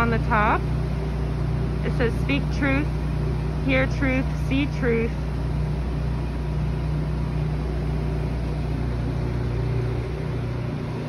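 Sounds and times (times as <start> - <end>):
truck engine idling: 0.0 - 11.0.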